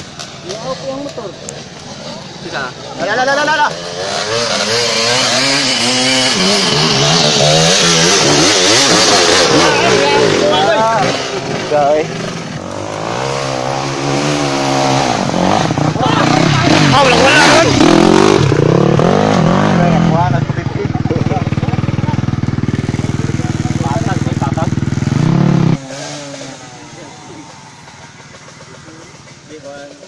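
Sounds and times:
dirt bike engine revving: 0.0 - 30.0.

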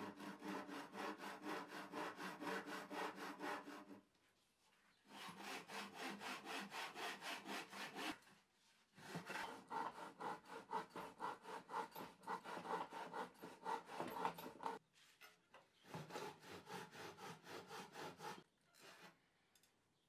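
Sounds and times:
hand saw cutting wood: 0.0 - 4.1, 5.1 - 8.3, 8.9 - 14.8, 15.8 - 19.2.

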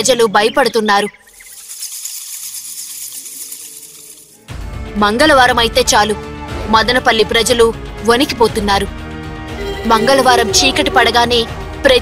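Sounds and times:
high hissing shimmer: 1.3 - 4.5
low deep music bed: 4.5 - 12.0.

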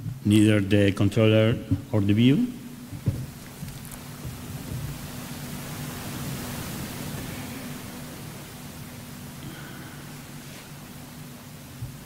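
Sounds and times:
low electrical hum: 0.0 - 12.0
microphone hiss: 0.0 - 12.0.

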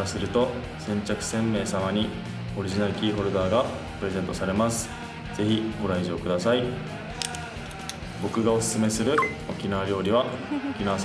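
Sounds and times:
light background music: 0.0 - 11.0
man speaking: 8.2 - 10.0.

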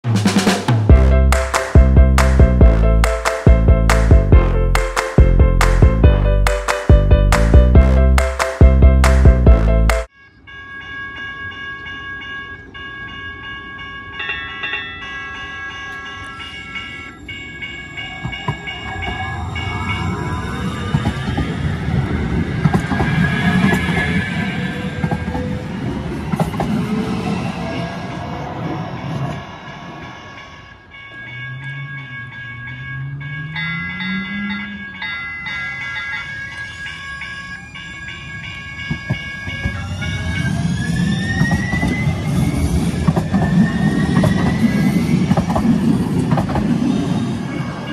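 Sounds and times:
steady high tones: 0.9 - 47.9
train wheels rumbling on rail: 17.9 - 47.9
electric train motor whine: 36.5 - 45.8.

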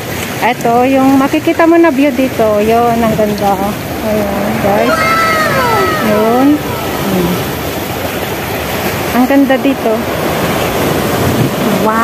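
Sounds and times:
sea waves breaking on rocks: 0.0 - 12.0.

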